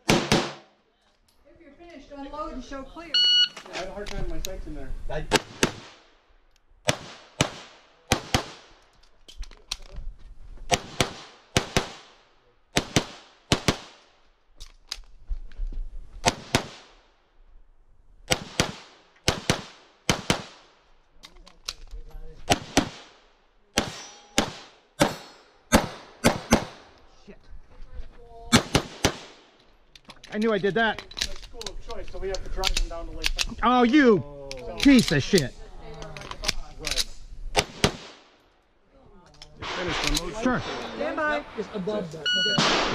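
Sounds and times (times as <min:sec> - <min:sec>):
pistol shots: 0:00.0 - 0:00.7, 0:06.8 - 0:08.8, 0:10.7 - 0:12.2, 0:18.3 - 0:20.7, 0:23.8 - 0:26.9, 0:28.5 - 0:29.5, 0:42.6 - 0:42.9.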